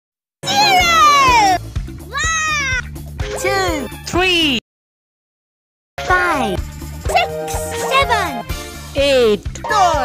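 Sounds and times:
children's music with steady beat: 0:06.0 - 0:10.0.

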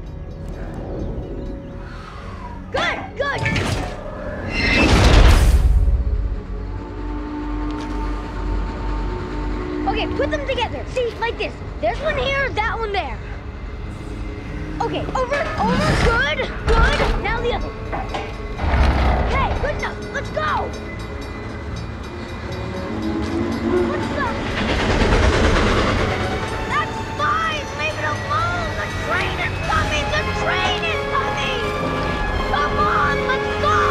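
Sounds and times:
low train rumble: 0:00.0 - 0:03.1, 0:04.0 - 0:33.9
train horn blast: 0:06.6 - 0:10.6, 0:22.1 - 0:27.2.

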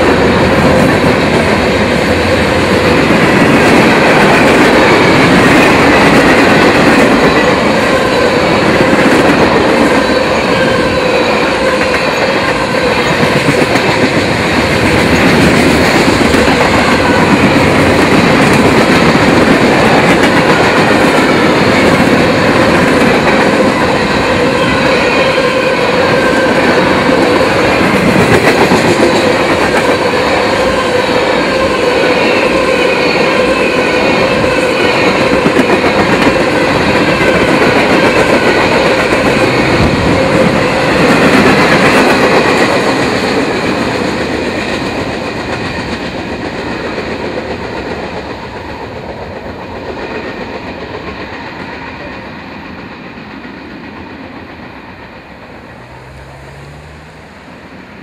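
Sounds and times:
freight train rolling past: 0:00.0 - 0:58.0
steel wheels on rails: 0:00.0 - 0:58.0.

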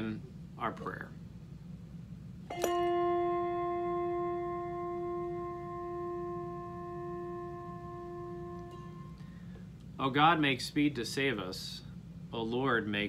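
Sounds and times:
singing bowl ringing: 0:02.5 - 0:09.5.

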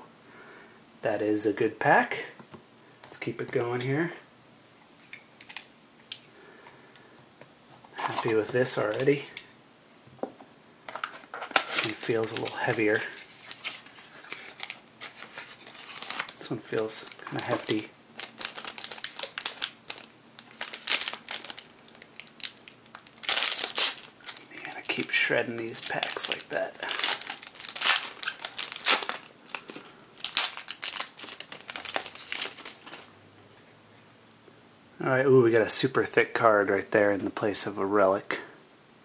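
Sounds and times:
plastic wrapper crinkling: 0:07.9 - 0:09.5, 0:10.9 - 0:33.1.

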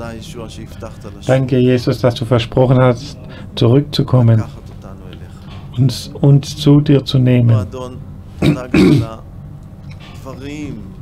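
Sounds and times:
man clearing his throat: 0:08.4 - 0:09.2.

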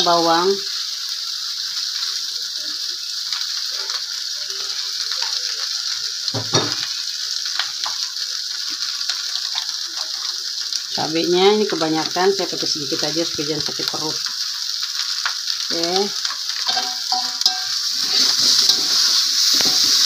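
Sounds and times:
food sizzling in a wok: 0:00.0 - 0:20.0
metal spatula scraping pan: 0:16.6 - 0:20.0.

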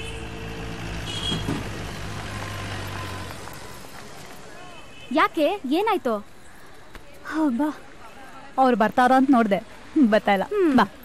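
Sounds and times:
low engine hum: 0:00.0 - 0:04.5
passing vehicle engines: 0:00.0 - 0:06.9.

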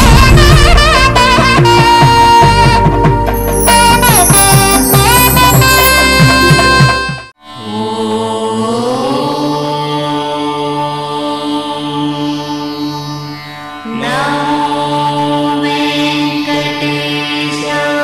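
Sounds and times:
chanted voice: 0:07.6 - 0:13.0.

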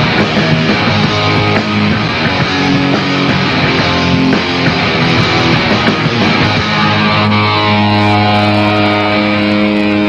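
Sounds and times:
distorted electric guitar drone: 0:00.0 - 0:10.0.

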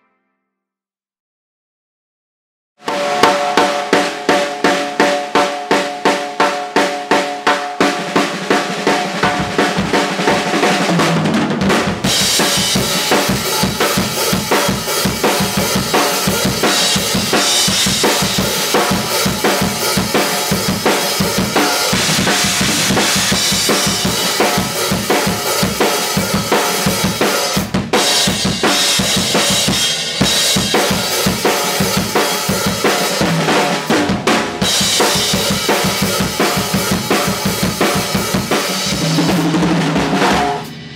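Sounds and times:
drum kit groove: 0:02.8 - 0:40.9.

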